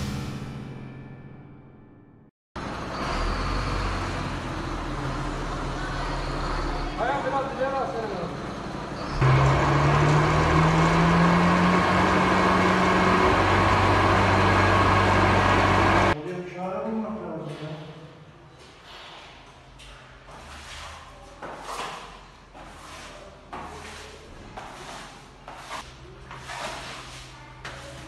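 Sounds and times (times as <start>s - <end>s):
truck engine and pump running: 2.6s - 16.2s.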